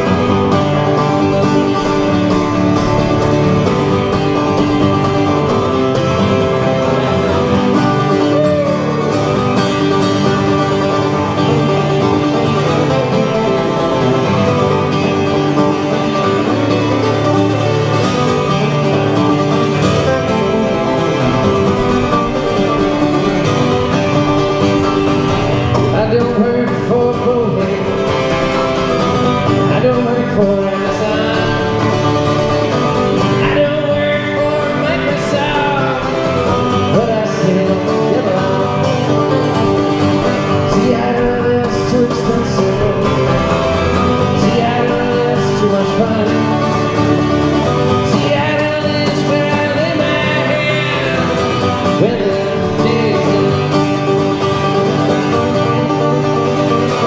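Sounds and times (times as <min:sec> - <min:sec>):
man singing: 0:00.0 - 0:56.0
acoustic guitars playing: 0:00.0 - 0:57.0.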